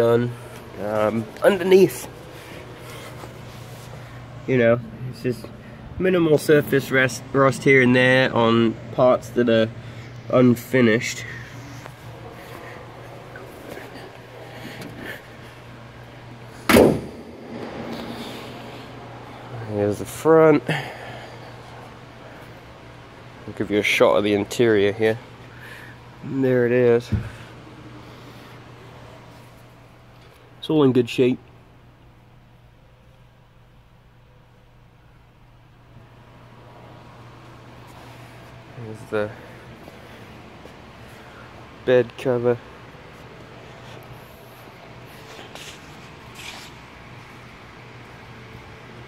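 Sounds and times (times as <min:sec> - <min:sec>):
steady low hum: 0:00.0 - 0:49.0
loud thump: 0:16.7 - 0:19.2.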